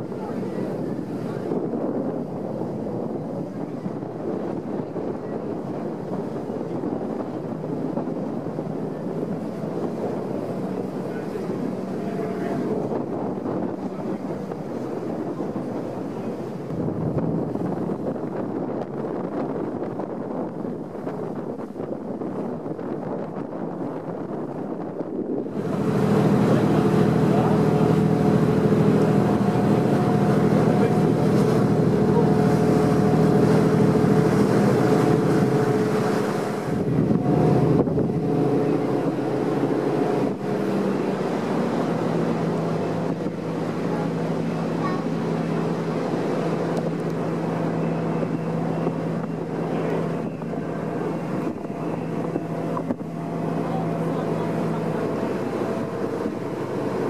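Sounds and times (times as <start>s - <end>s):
water noise: 0.0s - 57.0s
wind: 0.0s - 57.0s
ferry engines droning: 6.0s - 16.9s, 25.4s - 57.0s.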